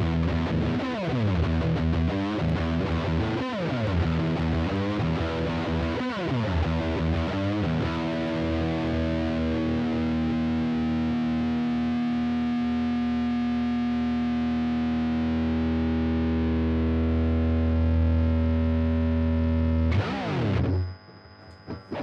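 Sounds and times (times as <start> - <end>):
distorted electric guitar chord: 0.0 - 22.0.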